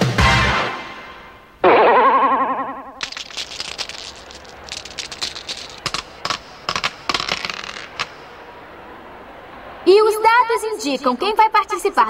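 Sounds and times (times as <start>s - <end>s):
dice clattering on stone floor: 3.0s - 8.3s.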